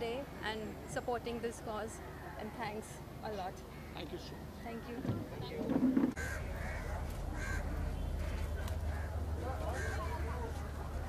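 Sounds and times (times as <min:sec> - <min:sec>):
low outdoor rumble: 0:04.6 - 0:11.0
bird harsh call: 0:06.2 - 0:10.4.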